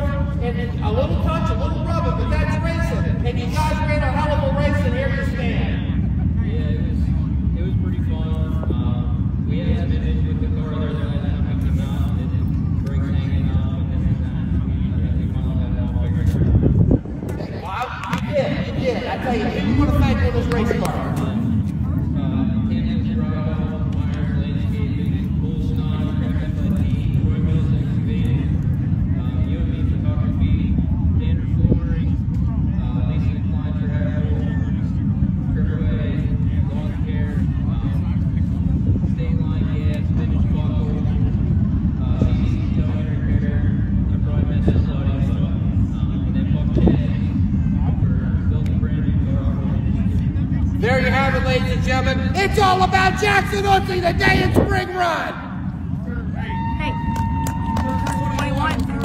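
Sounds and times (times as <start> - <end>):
muffled voices: 0.0 - 59.0
race car engines rumbling: 0.0 - 59.0.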